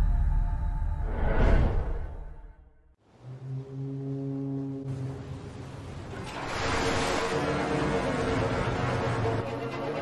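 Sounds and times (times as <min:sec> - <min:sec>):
ship's horn low blast: 0:03.1 - 0:10.0.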